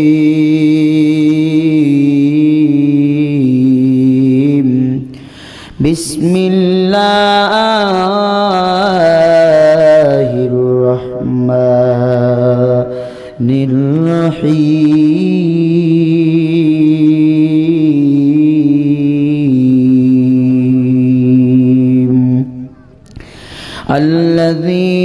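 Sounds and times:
man chanting into a microphone: 0.0s - 22.8s, 23.8s - 25.0s.

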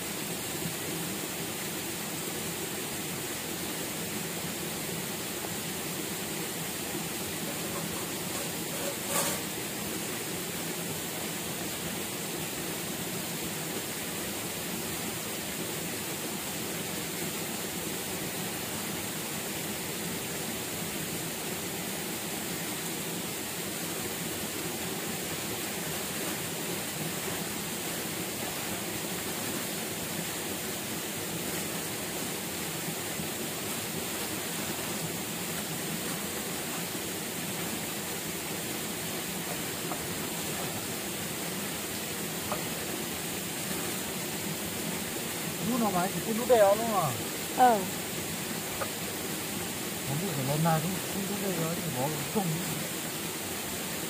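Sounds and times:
running water rushing: 0.0s - 54.0s.

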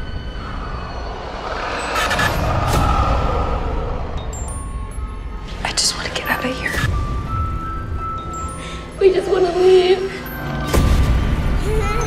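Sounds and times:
held high tone: 0.0s - 5.8s
hissing swells: 0.0s - 6.4s
low rumbling drone: 0.0s - 8.5s.

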